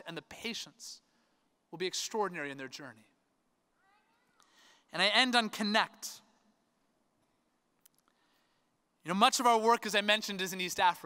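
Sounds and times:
person speaking: 0.0s - 1.1s, 1.7s - 3.2s, 4.9s - 6.4s
faint high-pitched cry: 3.7s - 4.7s.

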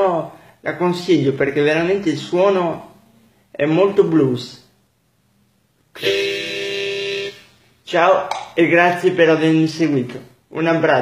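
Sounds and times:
harmonica chord: 6.0s - 7.6s.

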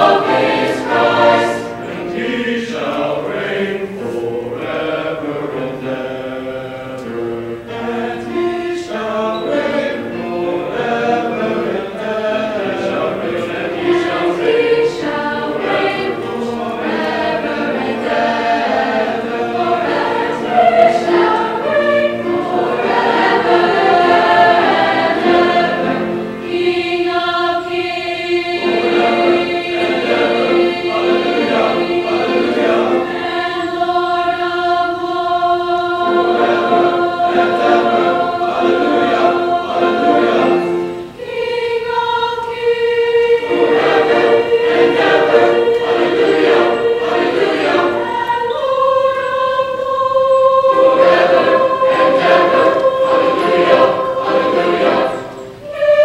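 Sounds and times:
school chorus singing: 0.0s - 56.0s.

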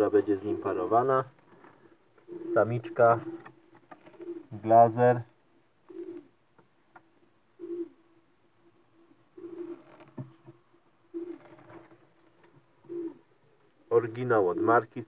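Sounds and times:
pigeons cooing: 0.0s - 4.9s, 5.8s - 6.4s, 7.5s - 8.1s, 9.0s - 10.4s, 11.1s - 11.9s, 12.7s - 14.9s.

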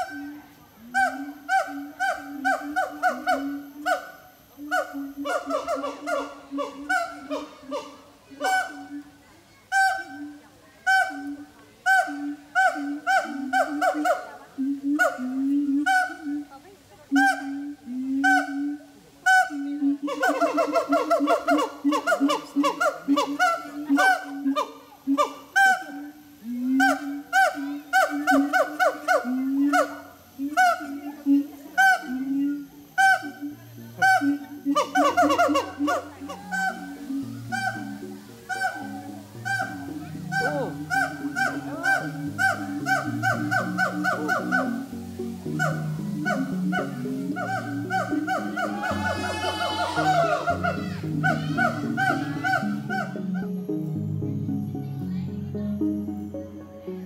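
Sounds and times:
apes honking hoots and barks: 34.0s - 53.2s.

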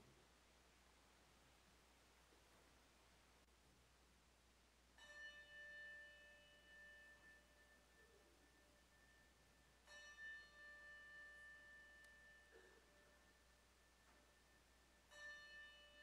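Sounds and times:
faint bell ringing: 5.0s - 16.0s.

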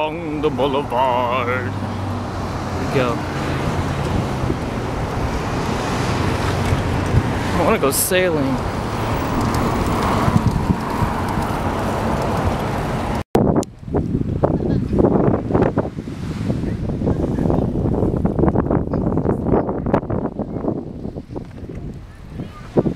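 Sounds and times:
wind buffeting microphone: 0.0s - 22.9s.

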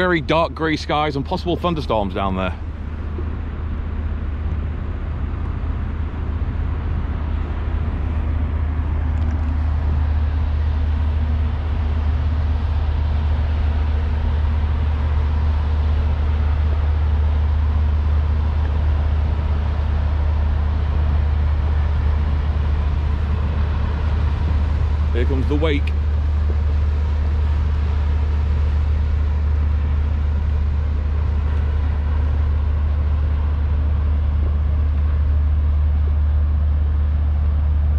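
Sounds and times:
low engine drone: 0.0s - 37.9s
water noise: 0.0s - 37.9s
wind: 0.0s - 37.9s.

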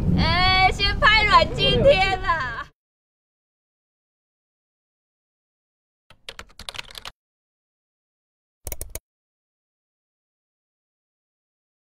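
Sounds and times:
computer keyboard typing: 6.1s - 7.2s, 8.7s - 9.0s.

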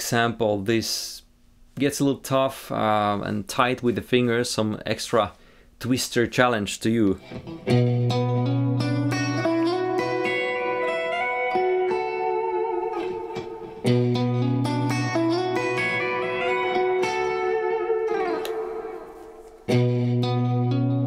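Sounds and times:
electric guitar phrase: 7.1s - 21.0s.

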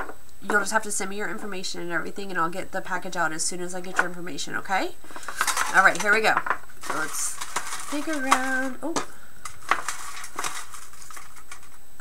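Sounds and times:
paper slips rustling: 5.1s - 11.8s.

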